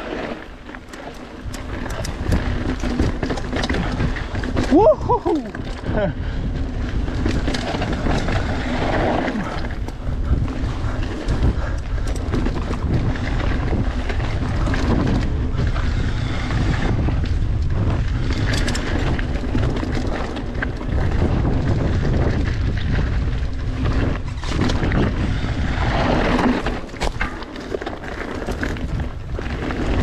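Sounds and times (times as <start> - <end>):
bike clicks and rattles: 0.0 - 30.0
wind buffeting microphone: 0.6 - 30.0.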